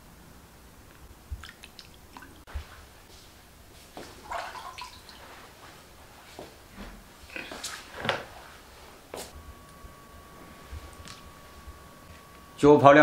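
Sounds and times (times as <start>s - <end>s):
water splashing and dripping: 1.3s - 2.5s, 4.0s - 5.5s.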